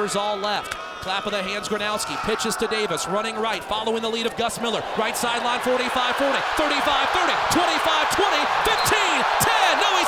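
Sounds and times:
excited male commentator: 0:00.0 - 0:10.0
stadium crowd noise: 0:00.0 - 0:10.0.

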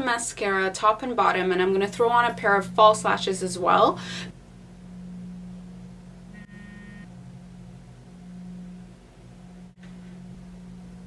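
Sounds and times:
steady low hum: 0:00.0 - 0:11.0
brief high-pitched tone: 0:06.3 - 0:07.1.

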